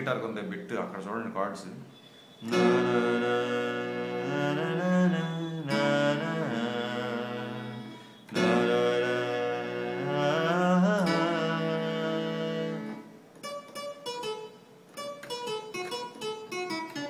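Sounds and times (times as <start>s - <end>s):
distortion guitar keyboard chords: 2.4s - 17.0s.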